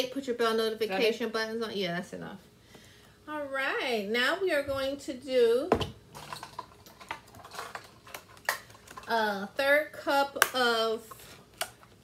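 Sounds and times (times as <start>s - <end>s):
kitchen utensils clicking and tapping: 5.8s - 9.3s.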